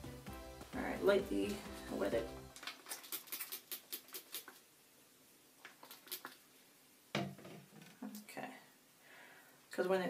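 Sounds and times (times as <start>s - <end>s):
spray bottle spritzing: 2.6s - 4.6s, 5.7s - 6.4s.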